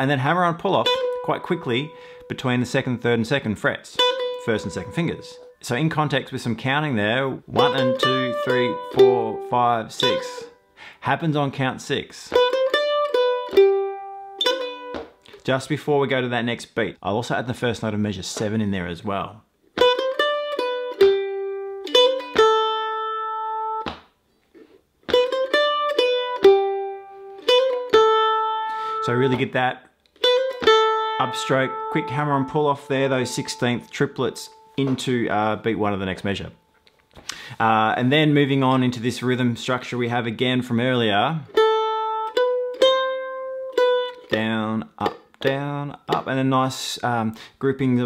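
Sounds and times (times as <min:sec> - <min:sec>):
mandolin picking a jig: 0:00.0 - 0:16.2, 0:19.8 - 0:24.0, 0:24.6 - 0:48.0.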